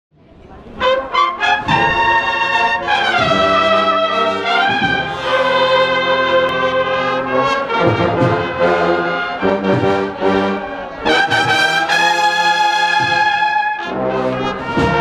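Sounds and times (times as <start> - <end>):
brass marching band playing: 0.7 - 15.0.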